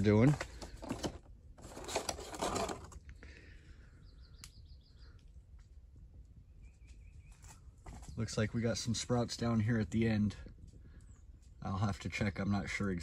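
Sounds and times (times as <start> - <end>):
plastic rustle: 0.2 - 3.0
bird chirping trill: 4.0 - 5.2, 6.5 - 7.6.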